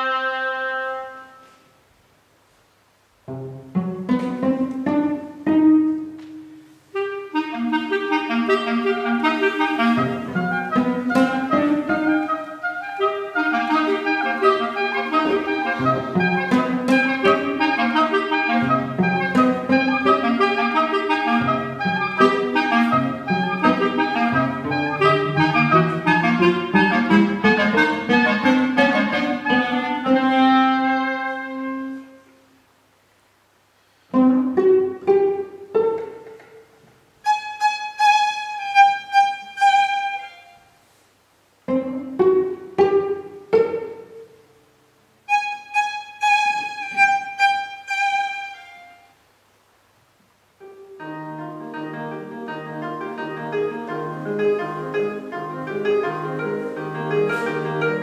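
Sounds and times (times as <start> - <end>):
cello line: 3.3 - 32.2, 34.2 - 40.6, 41.7 - 44.4, 45.2 - 49.1, 51.0 - 58.0
clarinets playing: 5.1 - 32.4, 37.2 - 40.7, 51.0 - 58.0.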